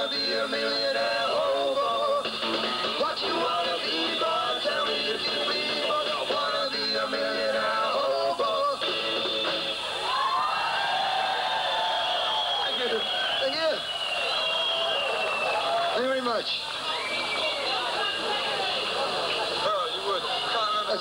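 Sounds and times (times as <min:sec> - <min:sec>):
electric guitar: 0:00.0 - 0:10.3
drums: 0:00.0 - 0:15.8.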